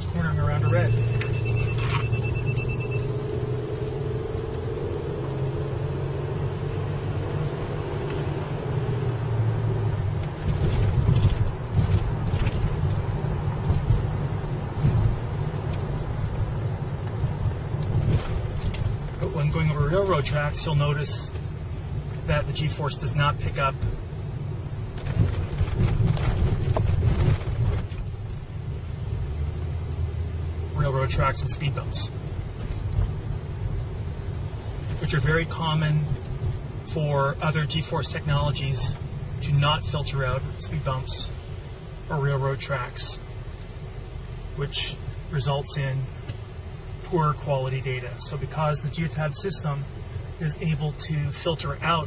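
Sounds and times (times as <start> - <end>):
car engine and road noise: 0.0 - 52.0
short high beeps: 0.5 - 3.3.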